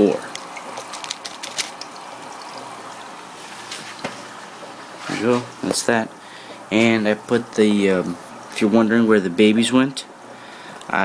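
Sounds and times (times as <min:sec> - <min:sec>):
aquarium water trickling: 0:00.0 - 0:11.0.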